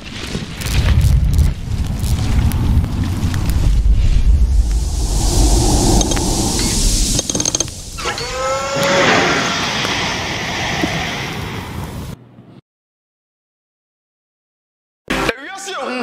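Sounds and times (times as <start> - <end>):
rising pitched whoosh: 1.0 - 10.3
deep rumble with hiss: 1.1 - 8.8
metallic clicks: 7.1 - 7.7.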